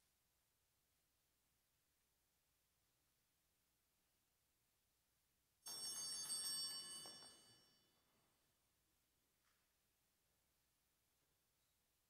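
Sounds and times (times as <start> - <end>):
small bell ringing: 5.7 - 8.4.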